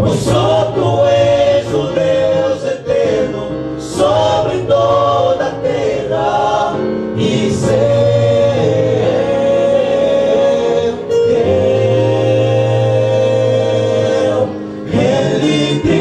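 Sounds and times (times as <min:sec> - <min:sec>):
male vocal group singing a hymn: 0:00.0 - 0:16.0.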